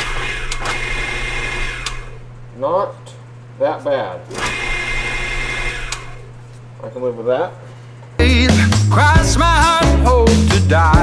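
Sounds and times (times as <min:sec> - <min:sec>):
drill press whining: 0:00.0 - 0:02.5, 0:04.3 - 0:06.6.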